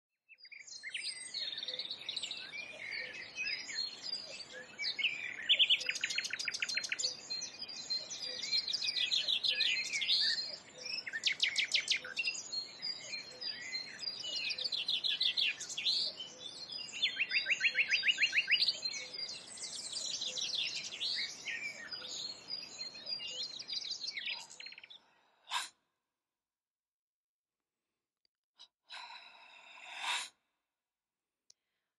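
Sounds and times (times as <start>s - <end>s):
birds singing and trilling: 0.3s - 25.2s.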